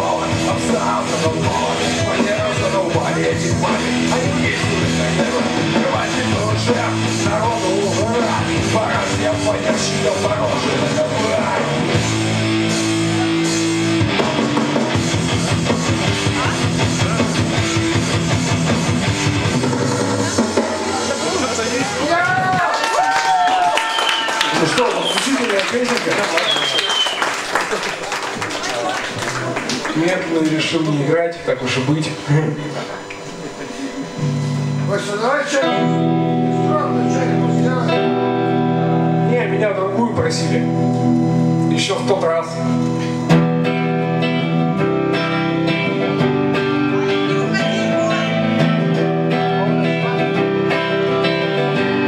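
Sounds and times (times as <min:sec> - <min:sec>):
man singing loudly: 0:00.0 - 0:11.9
electric guitar: 0:00.0 - 0:25.1, 0:25.9 - 0:52.0
strummed guitar chord: 0:31.6 - 0:52.0.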